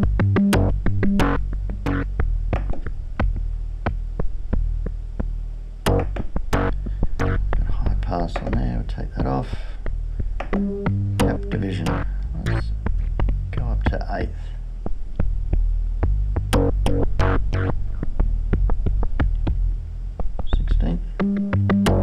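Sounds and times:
analogue bass synthesizer bassline: 0.0s - 22.0s
clicky percussive strokes: 5.9s - 7.6s, 10.4s - 13.4s.

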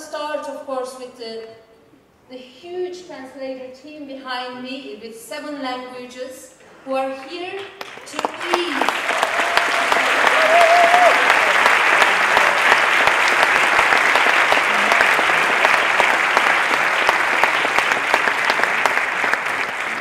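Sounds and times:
audience applauding: 7.6s - 20.0s.

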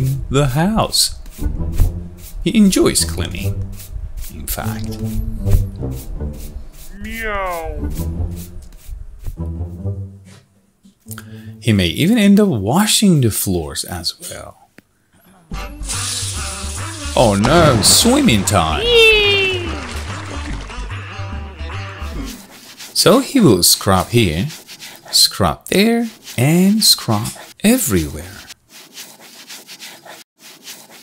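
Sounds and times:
background music with low beat: 1.2s - 2.4s, 7.5s - 10.3s
scrubber rubbing on floor: 3.8s - 7.0s, 21.6s - 31.0s
cartoon water rush: 17.2s - 21.1s.

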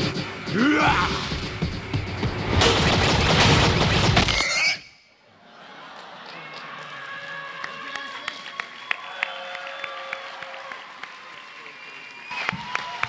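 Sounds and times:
cartoon action music: 0.0s - 4.8s
crashes and blows: 0.0s - 4.8s.

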